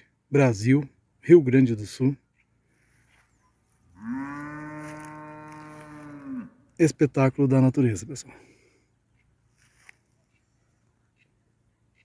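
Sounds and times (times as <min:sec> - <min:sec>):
cow mooing: 0:03.9 - 0:06.6.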